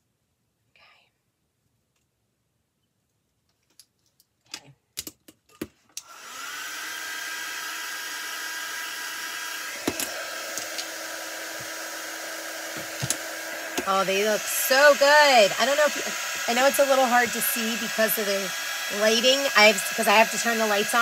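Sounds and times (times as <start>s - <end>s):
heat gun fan whirring: 6.0s - 21.0s.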